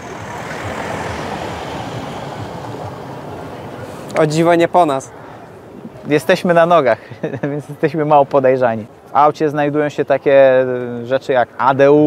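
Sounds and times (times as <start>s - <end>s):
vehicle driving past: 0.0s - 5.2s.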